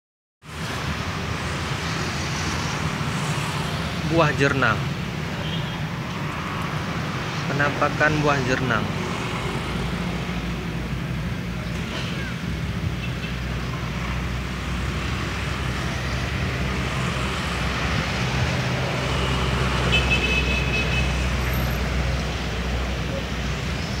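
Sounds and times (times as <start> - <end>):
road traffic: 0.4 - 24.0.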